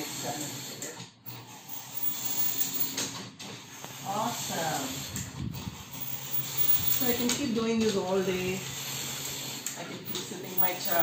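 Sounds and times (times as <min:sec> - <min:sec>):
knitting machine carriage whirring: 0:00.0 - 0:11.0.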